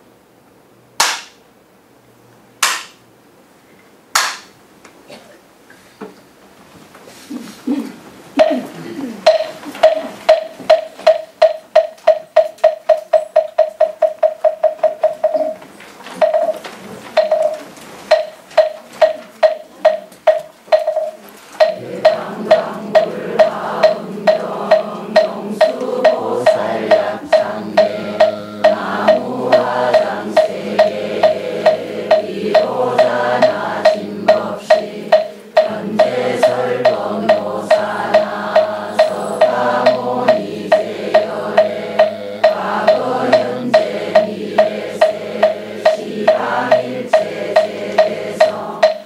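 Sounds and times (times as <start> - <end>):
wooden fish hollow knocks: 9.3 - 49.0
congregation chanting in unison: 21.6 - 49.0.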